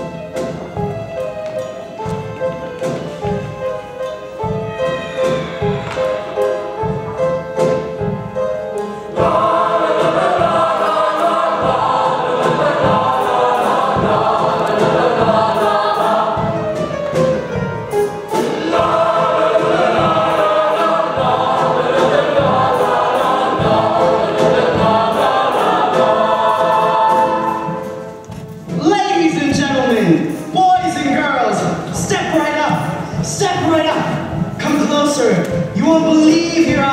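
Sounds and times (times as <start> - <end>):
instrumental accompaniment with beat: 0.0 - 36.9
choir singing in harmony: 2.8 - 34.5.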